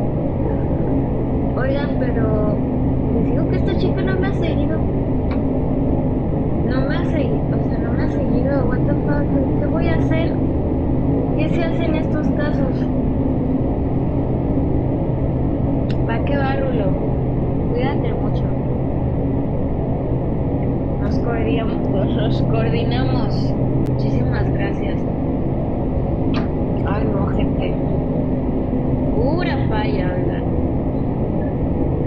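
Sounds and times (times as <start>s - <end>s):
low rumble with hum: 0.0s - 32.0s
person speaking: 11.4s - 12.9s, 15.9s - 17.0s, 21.0s - 25.0s.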